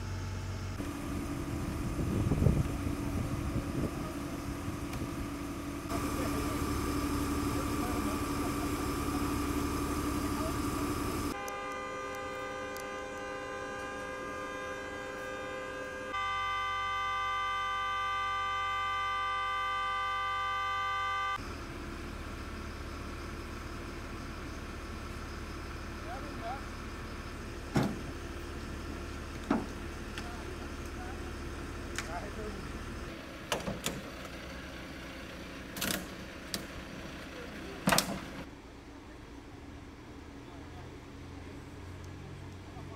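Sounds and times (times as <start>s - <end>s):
car horn sounding: 0.8s - 21.4s.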